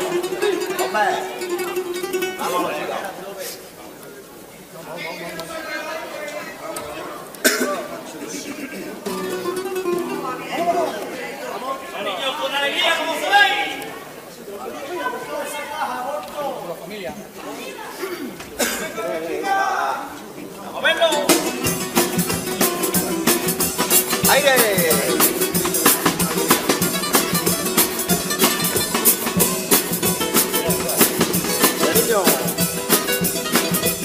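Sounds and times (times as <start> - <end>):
guitars strummed: 0.0 - 2.7, 9.0 - 11.5, 21.1 - 34.0
indistinct chatter in a hall: 0.0 - 34.0
steady drum beat: 21.2 - 34.0.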